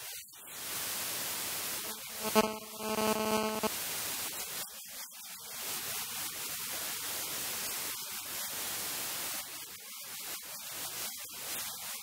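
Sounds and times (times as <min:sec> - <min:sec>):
static hiss: 0:00.0 - 0:11.9.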